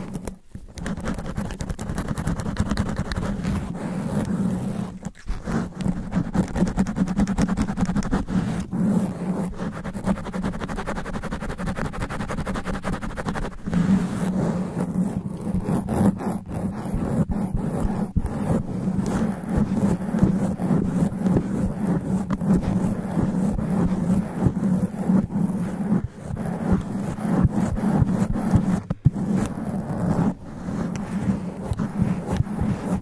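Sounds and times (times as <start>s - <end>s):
fingernails scratching microphone foam: 0.0s - 33.0s.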